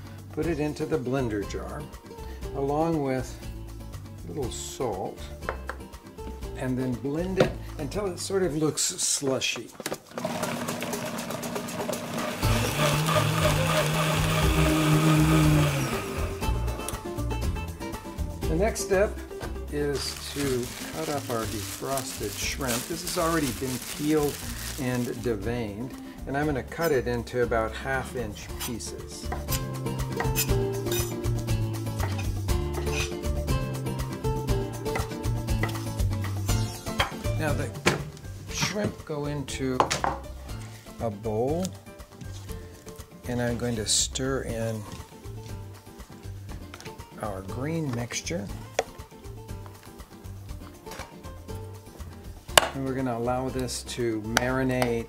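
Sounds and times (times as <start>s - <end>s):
background music: 0.0s - 55.0s
blender running: 10.1s - 16.6s.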